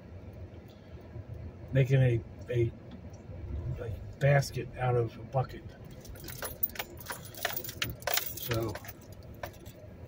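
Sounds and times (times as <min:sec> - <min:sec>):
low car rumble: 0:00.0 - 0:10.0
clicking and rattling in car cabin: 0:05.8 - 0:10.0.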